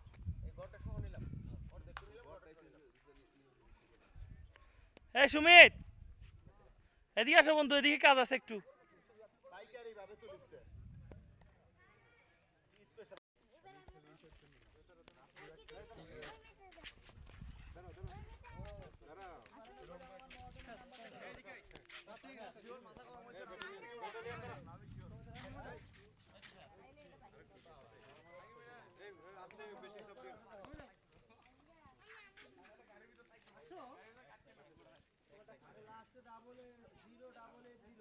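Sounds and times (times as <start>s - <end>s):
wind rumbling on microphone: 0.0s - 2.1s, 10.6s - 11.5s, 24.2s - 26.0s
distant people talking: 17.8s - 38.0s.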